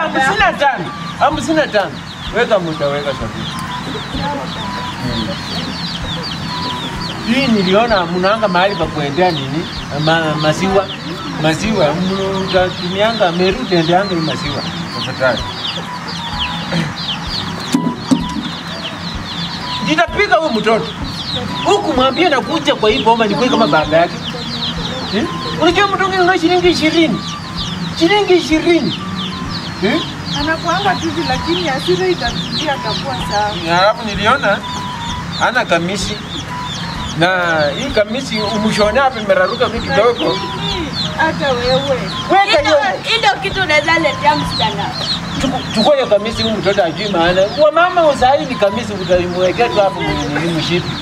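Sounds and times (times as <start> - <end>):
chicks peeping: 0.0 - 51.0
people's voices: 0.0 - 51.0
chicken clucks: 0.1 - 42.9.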